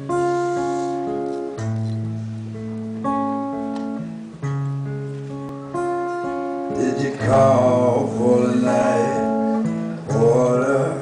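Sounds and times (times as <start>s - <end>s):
strummed guitar chords: 0.0s - 11.0s.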